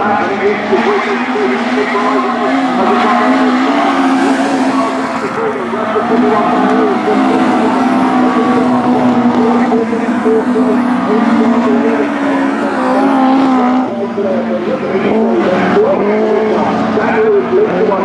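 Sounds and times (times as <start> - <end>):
racing car engines: 0.0 - 18.0.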